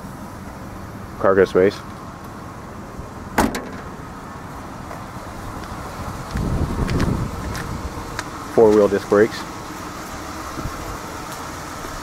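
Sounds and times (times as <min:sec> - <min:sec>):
low background rumble: 0:00.0 - 0:12.0
car liftgate shutting thud: 0:03.4 - 0:04.0.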